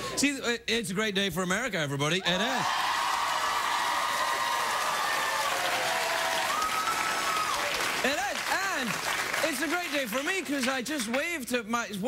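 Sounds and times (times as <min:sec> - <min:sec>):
person cheering: 0:02.2 - 0:08.4
audience applauding: 0:02.6 - 0:11.3
man talking: 0:08.0 - 0:12.0.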